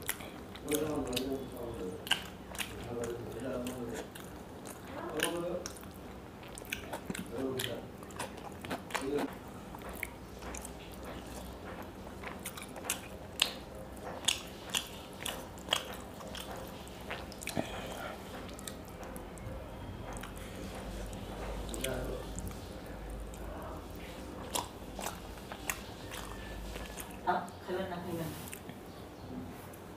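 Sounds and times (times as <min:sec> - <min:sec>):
chewing and lip-smacking: 0:00.0 - 0:27.3.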